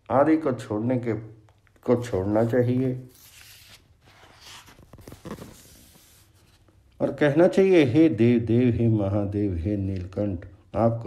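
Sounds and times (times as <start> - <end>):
faint low room noise: 0.0 - 11.0
soft rustle: 2.2 - 7.0.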